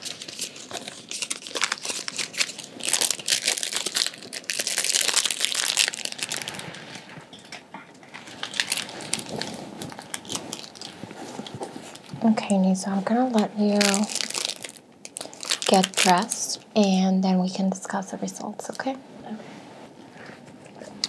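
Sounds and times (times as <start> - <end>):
materials crinkling and rustling: 0.0 - 16.6.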